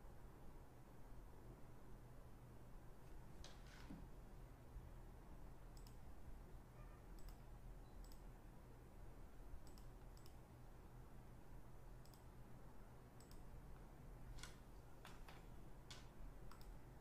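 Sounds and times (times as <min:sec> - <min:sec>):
low steady hum: 0:00.0 - 0:17.0
faint sharp clicks: 0:05.8 - 0:06.0, 0:07.2 - 0:07.4, 0:08.0 - 0:08.3, 0:09.6 - 0:10.4, 0:12.0 - 0:12.3, 0:13.2 - 0:13.5, 0:14.4 - 0:16.8.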